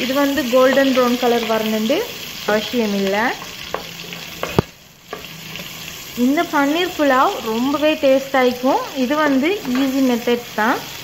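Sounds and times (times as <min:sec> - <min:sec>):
onions sizzling in oil: 0:00.0 - 0:11.0
spatula tap: 0:03.7 - 0:05.3.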